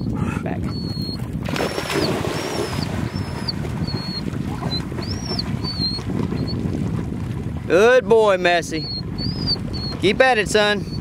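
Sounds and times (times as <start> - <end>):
water sloshing: 1.2 - 7.7
dog splashing into water: 1.4 - 6.4.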